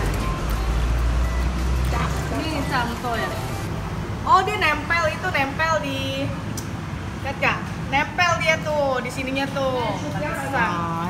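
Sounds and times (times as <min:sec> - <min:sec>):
road vehicle rumbling past: 0:00.0 - 0:11.0.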